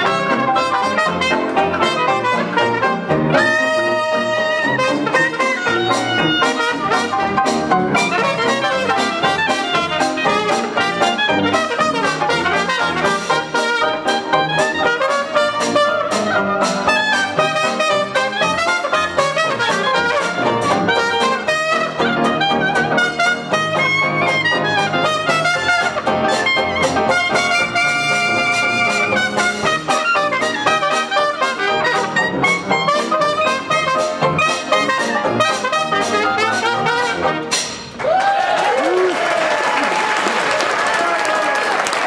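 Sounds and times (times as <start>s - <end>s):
trumpet leading: 0.0s - 37.8s
jazz band playing: 0.0s - 38.2s
audience cheering: 37.9s - 42.0s
audience applause: 38.0s - 42.0s.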